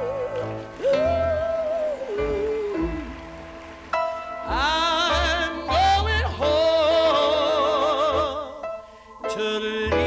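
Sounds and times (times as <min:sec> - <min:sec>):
man singing gospel into microphone: 0:00.0 - 0:03.4, 0:04.4 - 0:10.0.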